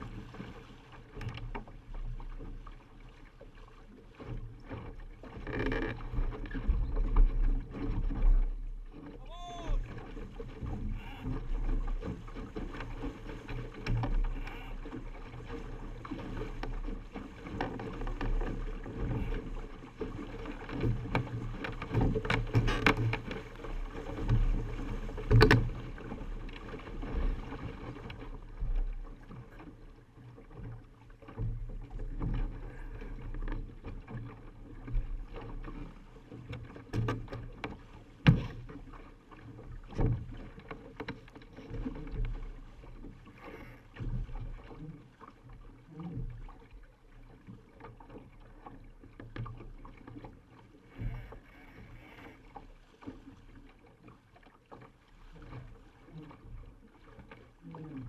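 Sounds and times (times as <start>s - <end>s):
water slapping against hull: 0.0s - 58.0s.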